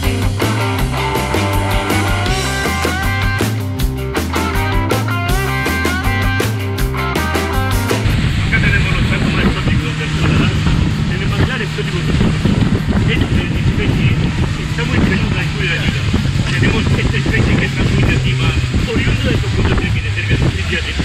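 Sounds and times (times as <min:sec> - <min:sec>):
boat motor droning: 0:00.0 - 0:21.0
rushing wind and water: 0:05.4 - 0:21.0
man's voice: 0:08.5 - 0:21.0.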